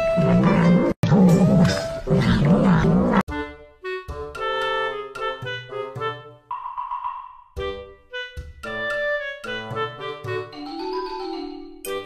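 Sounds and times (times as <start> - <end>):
keyboard melody: 3.3 - 12.0.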